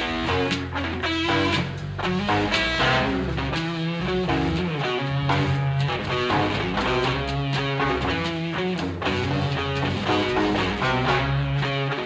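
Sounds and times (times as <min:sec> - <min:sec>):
bass line: 0:00.0 - 0:12.0
drums: 0:00.0 - 0:12.0
electric guitar notes: 0:00.0 - 0:12.0.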